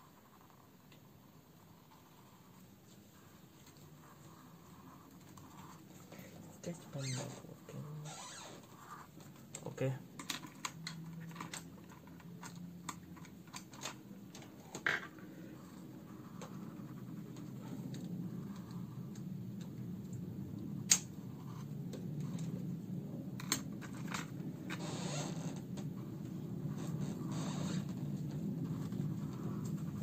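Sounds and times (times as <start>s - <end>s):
low steady hum: 0.0s - 30.0s
pen scratching on paper: 1.2s - 7.9s, 15.2s - 19.1s, 26.5s - 30.0s
pens clicking and tapping: 8.8s - 15.3s.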